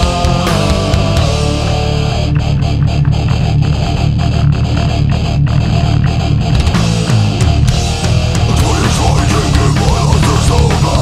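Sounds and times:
bass and drums: 0.0s - 11.0s
distorted electric guitars: 0.0s - 11.0s.

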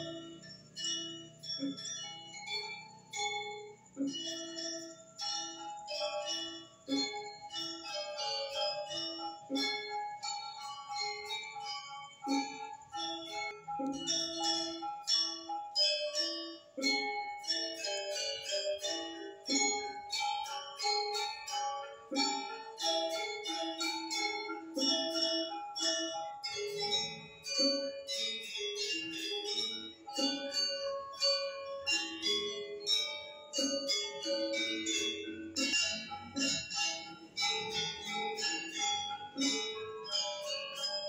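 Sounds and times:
gamelan metallophone music: 0.0s - 41.0s
ringing bell-like notes: 0.0s - 41.0s.

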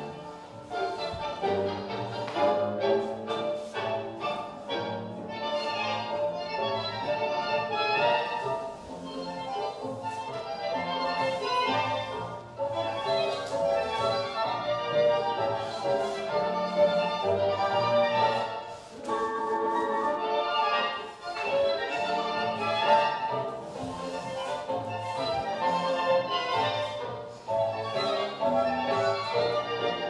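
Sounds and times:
orchestral tango music: 0.0s - 30.0s.

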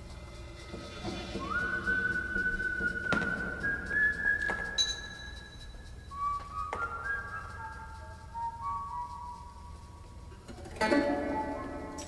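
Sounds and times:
whistled melody: 0.8s - 12.0s.

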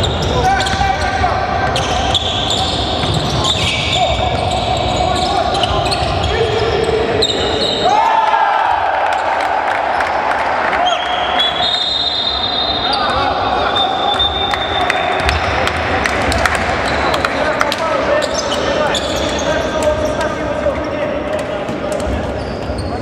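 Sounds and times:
players' voices echoing: 0.0s - 23.0s.

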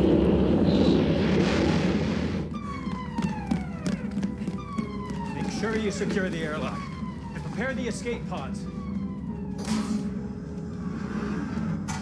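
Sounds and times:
faint falling alarm tones: 2.5s - 11.9s.

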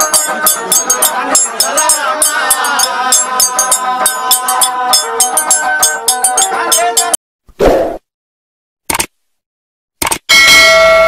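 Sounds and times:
short clicks: 8.9s - 9.1s, 10.0s - 10.3s
notification bell ding: 10.3s - 11.0s.

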